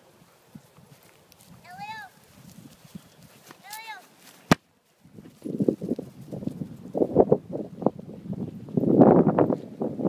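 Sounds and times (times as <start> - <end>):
dogs scuffling on grass: 0.2 - 7.0.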